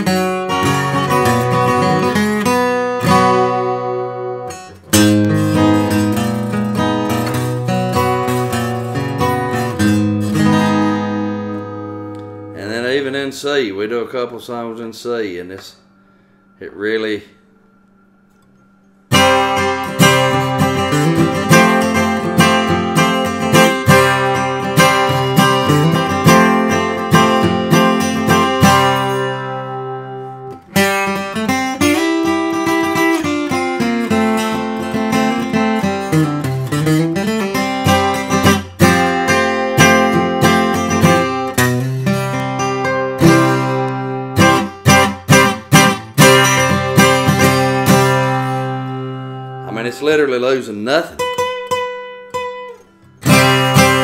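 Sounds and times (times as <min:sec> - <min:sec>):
acoustic guitar flatpicking: 0:00.0 - 0:13.3, 0:17.4 - 0:54.0.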